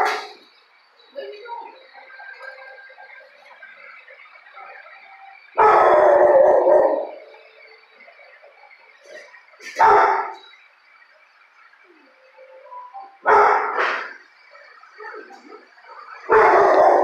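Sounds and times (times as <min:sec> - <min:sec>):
dogs barking: 0:00.0 - 0:00.4, 0:05.5 - 0:07.5, 0:09.6 - 0:10.5, 0:13.2 - 0:14.3, 0:15.2 - 0:17.0
loud dog howl: 0:05.6 - 0:07.4, 0:16.2 - 0:17.0.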